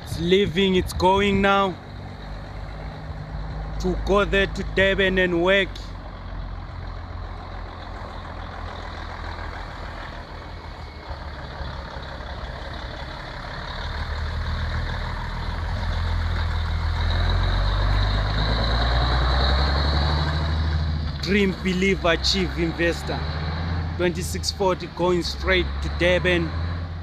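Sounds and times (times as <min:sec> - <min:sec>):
diesel truck engine driving past: 0:00.0 - 0:27.0.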